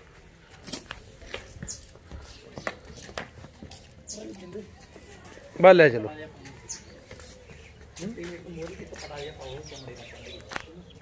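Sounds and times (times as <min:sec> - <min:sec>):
birds cooing and chirping: 0:01.0 - 0:11.0.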